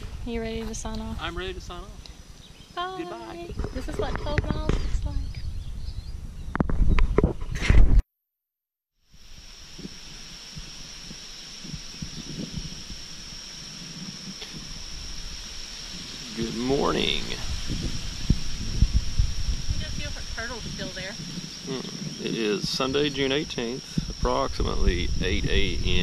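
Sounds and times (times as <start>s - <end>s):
insect drone: 0.0s - 6.5s, 9.0s - 26.0s
low wind rumble: 0.0s - 7.9s, 9.2s - 26.0s
wind buffeting microphone: 0.0s - 8.0s, 9.2s - 26.0s
rising voice-like call: 21.6s - 22.5s.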